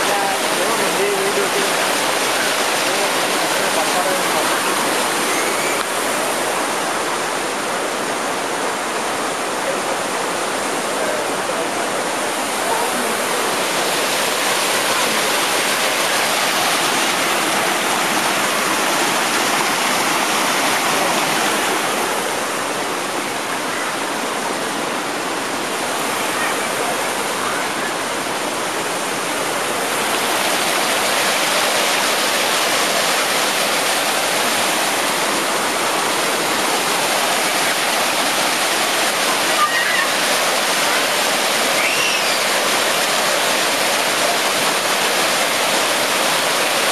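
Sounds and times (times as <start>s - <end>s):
water rushing over rapids: 0.0s - 46.9s.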